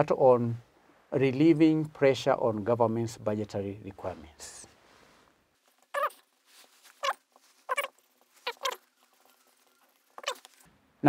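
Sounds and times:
marker squeaking on whiteboard: 5.9s - 6.2s, 7.0s - 8.9s, 10.1s - 10.5s.

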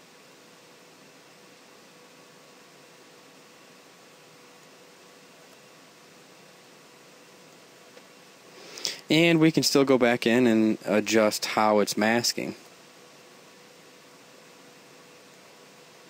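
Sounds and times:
faint hum tone: 0.0s - 16.0s
microphone background hiss: 0.0s - 16.0s.

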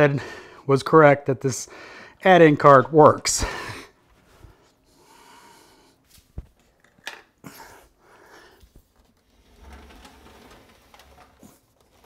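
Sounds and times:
faint breathing: 0.1s - 0.7s, 1.7s - 2.2s, 3.4s - 6.0s, 7.4s - 8.8s.

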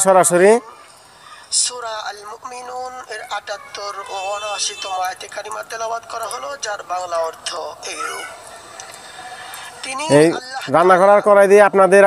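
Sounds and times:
faint background noise: 0.0s - 12.0s
rooster crowing: 3.3s - 5.2s.

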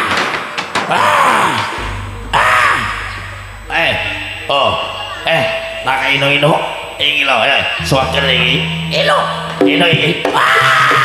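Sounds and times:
low hum: 1.2s - 11.0s
drum strokes falling pitch: 1.7s - 11.0s
ringing metal percussion: 1.8s - 11.0s.

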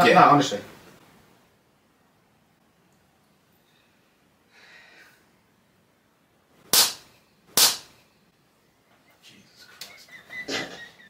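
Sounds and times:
open-hand slaps on bare neck: 6.7s - 7.9s.

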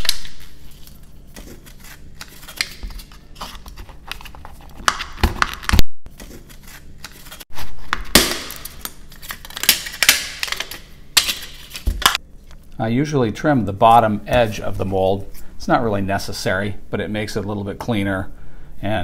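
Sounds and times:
plastic crinkling and tearing: 5.6s - 12.2s.

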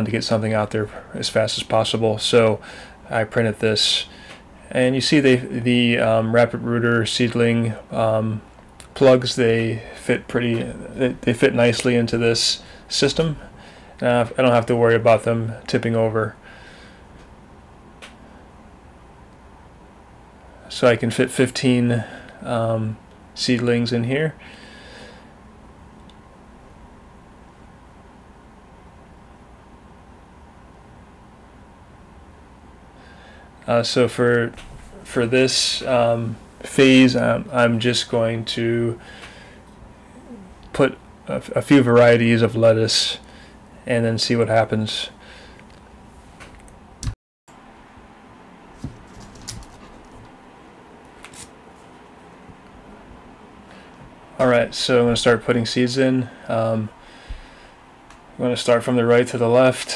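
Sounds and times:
low room hum and hiss: 0.0s - 59.9s
soft clicks and rustles: 48.8s - 50.4s.

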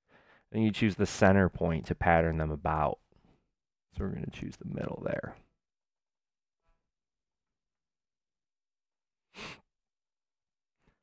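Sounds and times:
breath close to microphone: 0.0s - 0.5s, 9.3s - 9.7s.

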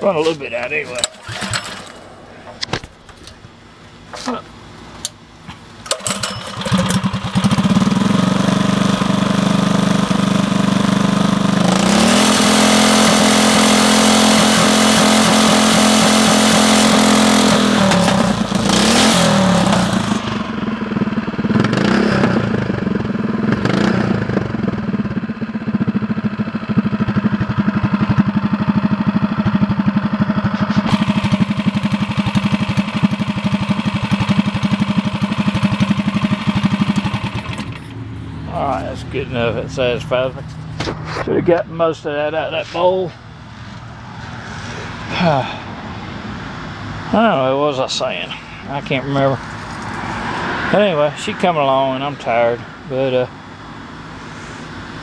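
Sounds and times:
small single-cylinder engine running: 5.9s - 25.1s, 25.8s - 37.9s.

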